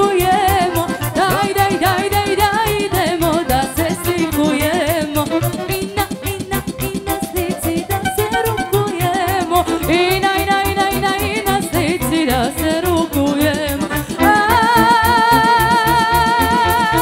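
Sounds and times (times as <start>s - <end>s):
accordion: 0.0s - 17.0s
person singing: 0.0s - 17.0s.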